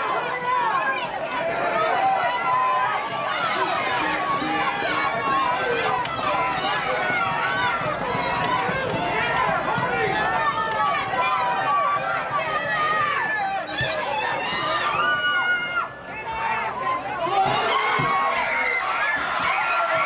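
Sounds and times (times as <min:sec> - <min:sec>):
many voices calling and talking: 0:00.0 - 0:20.0.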